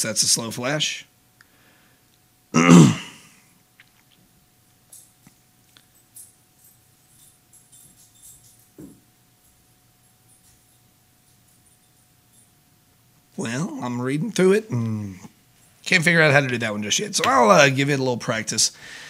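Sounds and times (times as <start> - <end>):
faint steady hum: 0.0 - 19.0
light handling clicks and rustles: 3.8 - 12.6.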